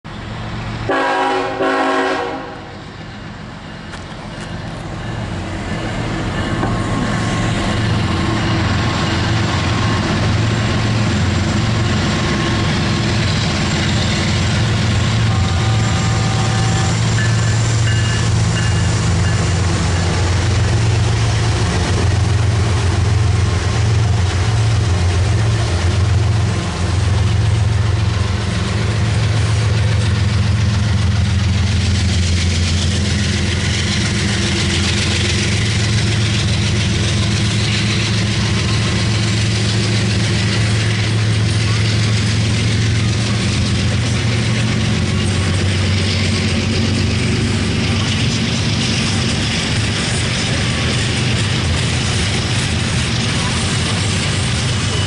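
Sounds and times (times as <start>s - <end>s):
diesel locomotive engine drone: 0.0s - 55.0s
train cars rumbling on rails: 0.0s - 55.0s.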